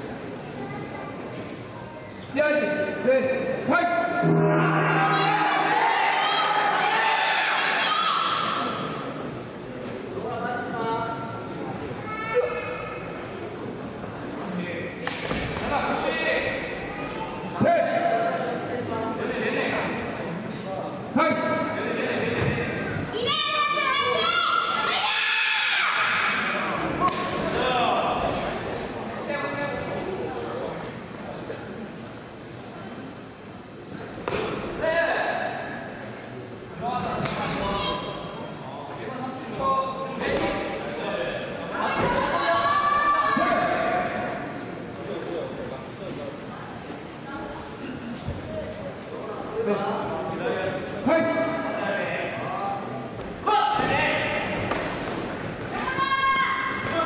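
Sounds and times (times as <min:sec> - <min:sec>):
people shouting in echoing hall: 0:03.7 - 0:09.0, 0:22.8 - 0:28.2, 0:41.8 - 0:44.4, 0:53.4 - 0:54.7, 0:55.7 - 0:57.0.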